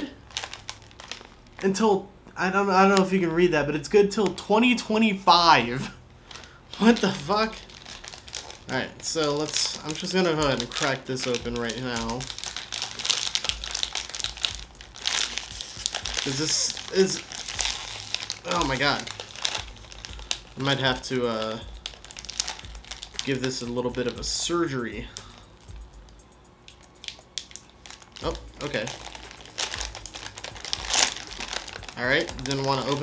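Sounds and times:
foil pouch crinkling: 0.1 - 1.6, 6.2 - 25.8, 26.7 - 33.0.

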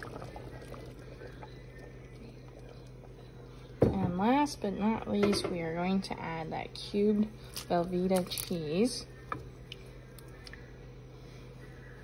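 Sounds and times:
soup bubbling softly: 0.0 - 3.8
low steady hum: 0.0 - 12.0.

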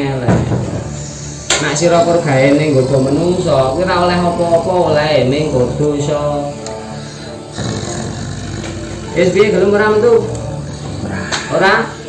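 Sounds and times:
man growling: 1.6 - 5.9, 6.6 - 11.5.

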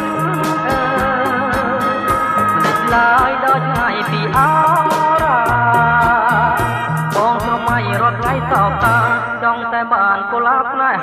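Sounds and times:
pop song with band: 0.0 - 11.0.

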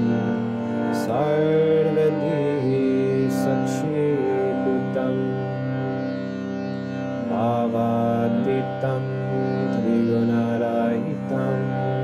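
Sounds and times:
person chanting: 0.0 - 6.3, 7.2 - 12.0
harmonium chords: 0.0 - 12.0.

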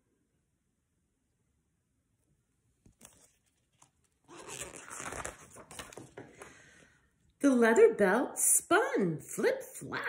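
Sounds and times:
paper page rustling: 2.8 - 6.7.

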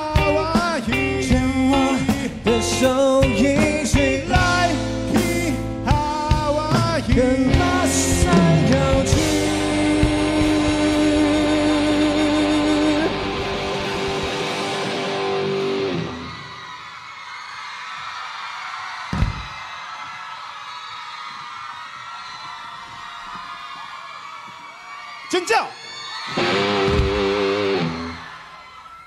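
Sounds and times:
live pop-rock band playing: 0.0 - 16.4, 26.3 - 28.3
crowd noise: 0.0 - 29.0.

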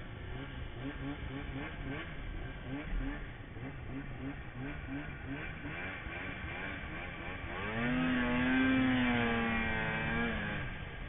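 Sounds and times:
snowmobile engine revving: 0.0 - 11.0.

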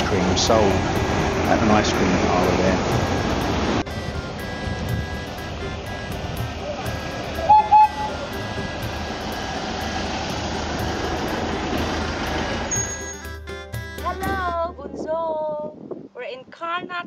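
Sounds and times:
road train running: 0.0 - 14.6
music playing: 0.0 - 15.0
horn toots: 3.0 - 10.1.

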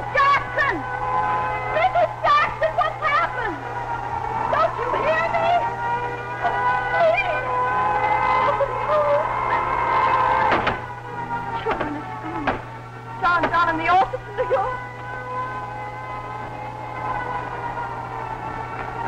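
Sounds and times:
woman speaking: 0.0 - 0.9, 1.7 - 3.6, 4.5 - 5.7, 6.4 - 7.5, 8.4 - 9.7, 11.5 - 12.6, 13.2 - 14.8
low hum: 0.0 - 19.0.

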